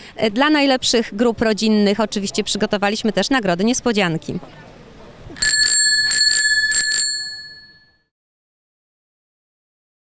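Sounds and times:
bicycle bell dinging: 0:05.4 - 0:08.1.

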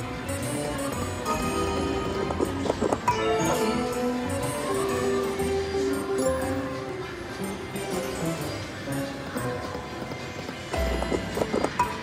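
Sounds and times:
slot machine game music: 0:00.0 - 0:12.0.

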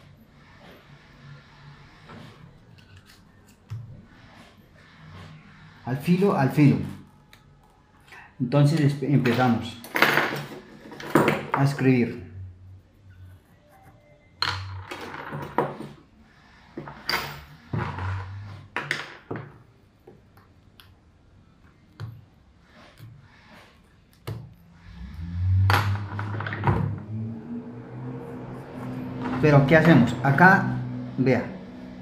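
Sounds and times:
pencil marking on paper: 0:00.0 - 0:06.6, 0:22.5 - 0:24.6.

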